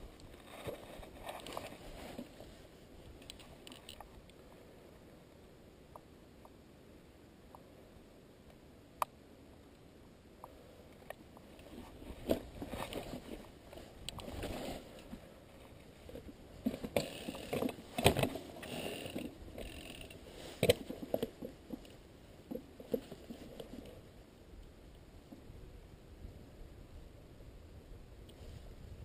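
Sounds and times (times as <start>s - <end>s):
bike knocking and rattling: 16.0s - 23.8s.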